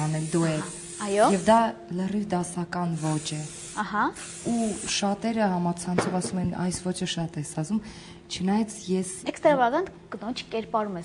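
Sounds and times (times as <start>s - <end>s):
aerosol spray hissing: 0.0s - 1.7s, 2.9s - 5.2s.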